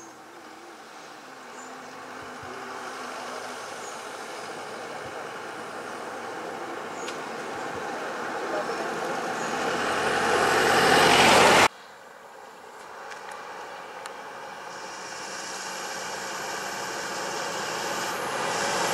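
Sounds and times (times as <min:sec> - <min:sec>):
vehicle engine and road noise: 0:00.0 - 0:18.9.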